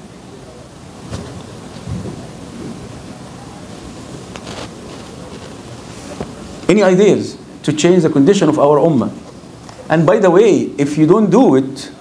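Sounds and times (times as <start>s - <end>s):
faint indistinct voices: 0.0s - 6.7s
low steady room noise: 0.0s - 12.0s.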